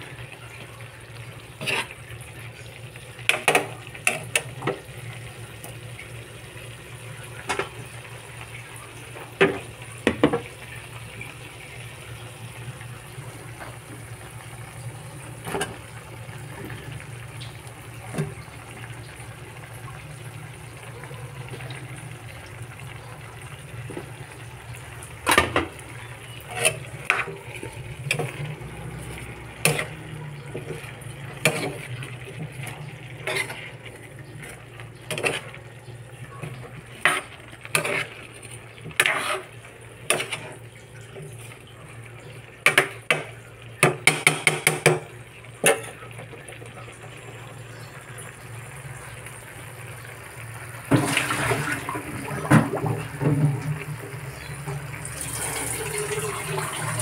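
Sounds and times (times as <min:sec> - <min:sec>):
sauce simmering in a frying pan: 0:00.0 - 0:57.0
metal spatula scraping a pan: 0:01.5 - 0:02.1, 0:26.3 - 0:35.6, 0:36.4 - 0:40.6.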